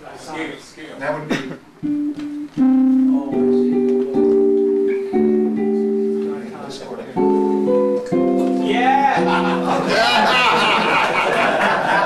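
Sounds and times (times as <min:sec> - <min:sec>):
clean electric guitar chords: 0:01.8 - 0:10.0.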